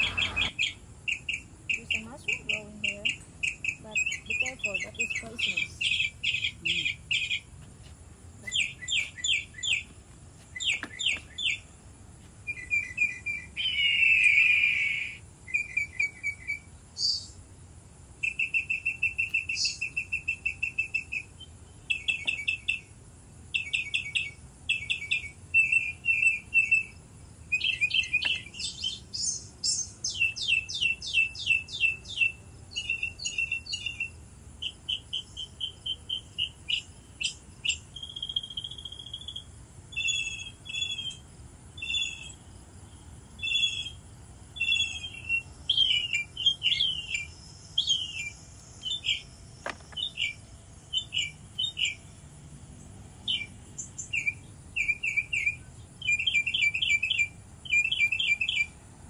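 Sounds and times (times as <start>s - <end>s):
birds chirping and trilling: 0.0s - 7.6s, 8.3s - 17.4s, 18.2s - 58.8s.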